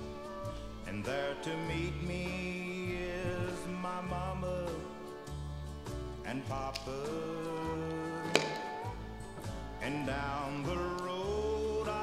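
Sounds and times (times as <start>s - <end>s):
country music: 0.0s - 12.0s.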